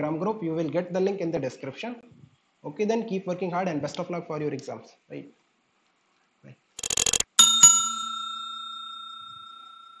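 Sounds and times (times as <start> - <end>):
rattle of clicks: 6.8 - 7.3
bell ringing: 6.8 - 10.0.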